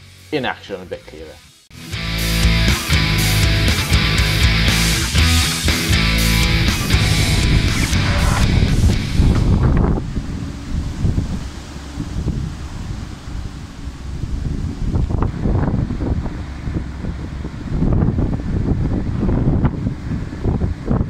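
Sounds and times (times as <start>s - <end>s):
music track: 1.8s - 9.3s
wind buffeting microphone: 6.0s - 21.0s.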